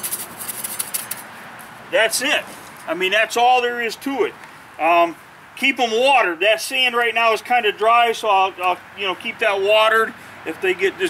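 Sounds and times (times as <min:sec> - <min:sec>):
trowel patting and scraping sand: 0:00.0 - 0:03.0.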